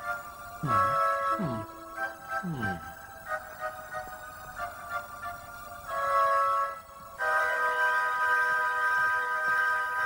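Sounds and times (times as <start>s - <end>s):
cartoon music held chord: 0.0s - 5.0s.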